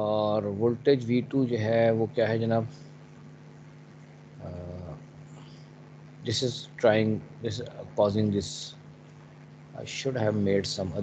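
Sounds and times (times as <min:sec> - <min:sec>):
faint low hum: 0:00.0 - 0:11.0
man humming: 0:04.4 - 0:05.6.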